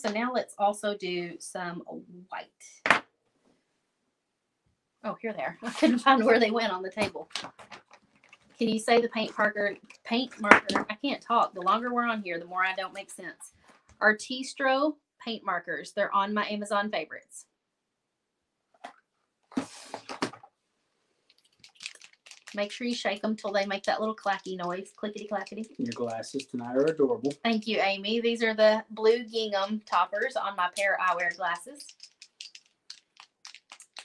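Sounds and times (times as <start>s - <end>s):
paint marker ball clacking: 29.6s - 34.0s.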